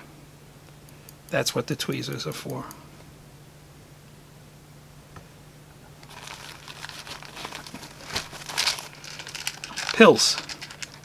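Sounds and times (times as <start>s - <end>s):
nylon pouch rustling: 6.0s - 11.0s
plastic pill box handling: 6.0s - 11.0s.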